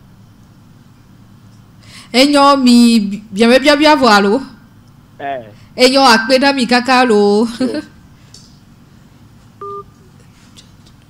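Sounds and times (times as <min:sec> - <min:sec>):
two-tone electronic beep: 0:09.6 - 0:09.9.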